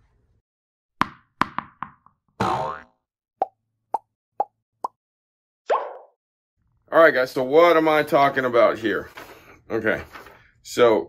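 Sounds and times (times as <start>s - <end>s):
cartoon pop sound effects: 1.0s - 5.0s, 5.7s - 6.2s.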